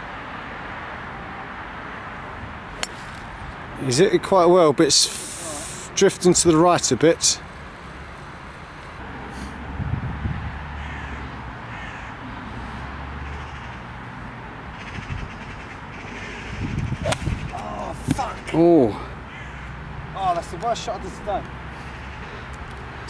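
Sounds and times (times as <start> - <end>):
golf club striking ball: 2.8 - 3.2, 17.0 - 18.2
wind on microphone: 9.6 - 10.6, 14.9 - 15.5, 16.4 - 18.2.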